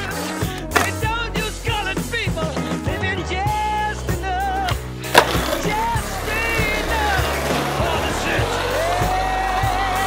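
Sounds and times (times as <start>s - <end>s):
background music with singing: 0.0s - 10.0s
skateboard clack on concrete: 5.1s - 5.9s.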